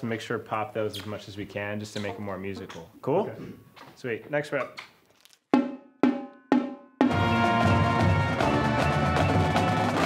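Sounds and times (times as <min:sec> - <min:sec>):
marching drum strokes: 0:05.6 - 0:10.0.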